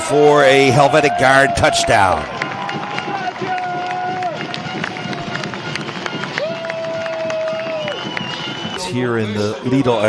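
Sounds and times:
stadium crowd noise: 0.0s - 10.0s
sharp claps or bangs: 2.2s - 8.8s.

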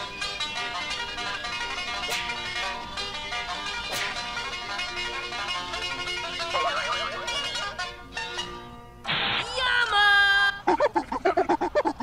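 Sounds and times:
choppy vocal-like sounds: 10.5s - 12.0s.

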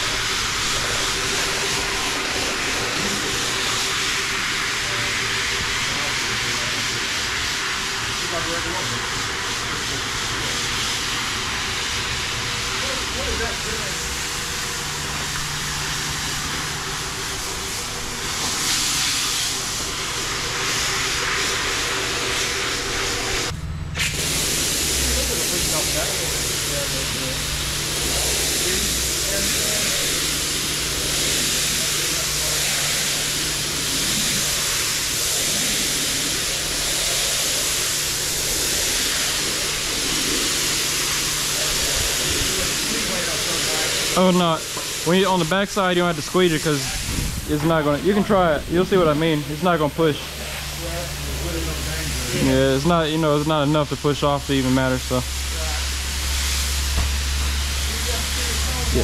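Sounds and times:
floor scrubbing machine humming: 0.0s - 59.0s.

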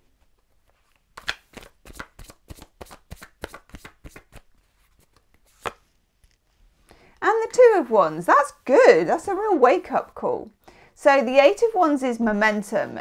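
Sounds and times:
cards shuffling: 0.3s - 6.4s.

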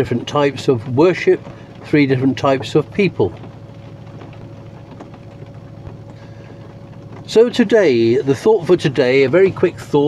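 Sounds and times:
faint steady hum: 0.0s - 10.0s
vehicle engine rumble: 0.0s - 10.0s.

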